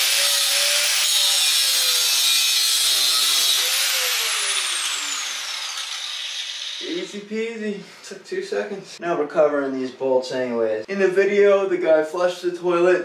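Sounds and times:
grinder wheel spinning down: 0:00.0 - 0:07.0
angle grinder cutting metal: 0:00.0 - 0:07.1.

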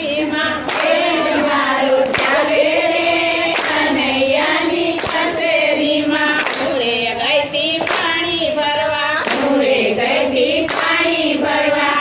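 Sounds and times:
women singing devotional song: 0:00.0 - 0:12.0
hand claps: 0:00.5 - 0:04.0, 0:04.9 - 0:05.4, 0:06.3 - 0:06.9, 0:07.7 - 0:08.3, 0:09.2 - 0:09.6, 0:10.6 - 0:11.1.

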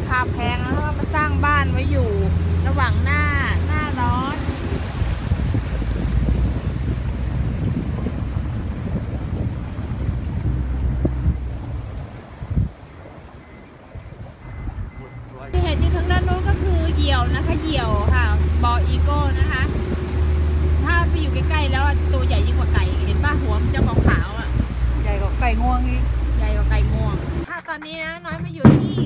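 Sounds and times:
outboard motor running: 0:00.0 - 0:27.5
water rushing past hull: 0:00.0 - 0:27.5
wind on microphone: 0:00.0 - 0:27.5.

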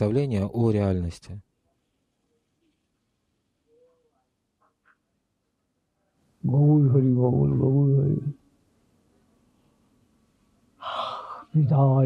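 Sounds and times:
person speaking: 0:06.4 - 0:08.4.

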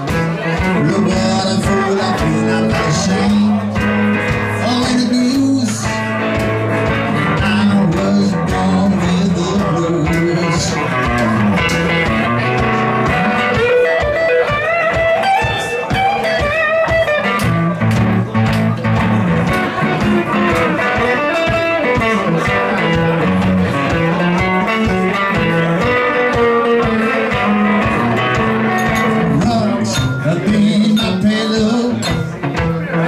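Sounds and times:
guitar bass line: 0:00.0 - 0:33.0
picked guitar melody: 0:00.0 - 0:33.0.

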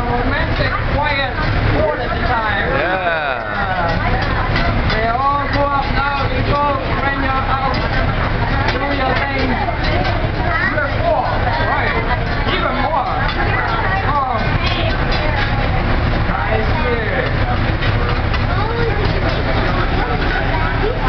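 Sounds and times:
people talking and laughing: 0:00.0 - 0:21.0.

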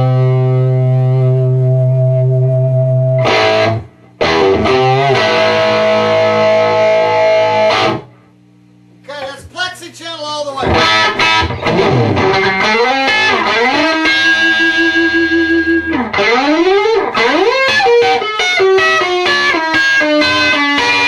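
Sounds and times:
overdriven electric guitar: 0:00.0 - 0:08.3, 0:10.6 - 0:21.0
low amp hum: 0:00.0 - 0:21.0.

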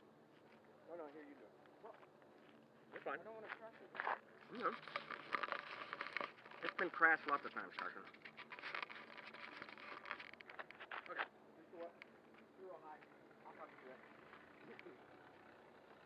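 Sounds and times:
footsteps on gravel: 0:01.8 - 0:07.0.

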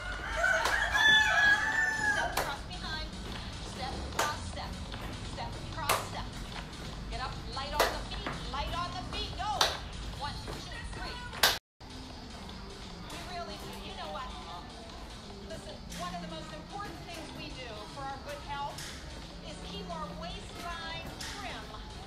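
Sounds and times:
rooster crowing: 0:00.0 - 0:02.4
background music with beat: 0:00.0 - 0:22.0.

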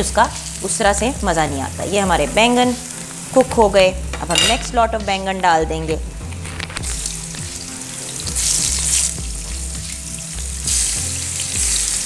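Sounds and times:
eggplant sizzling in oil: 0:00.0 - 0:12.0.

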